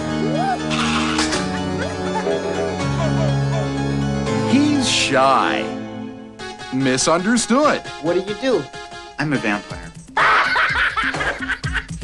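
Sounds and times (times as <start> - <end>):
music with bass-drum beat: 9.8 - 12.0
laughter: 10.2 - 12.0.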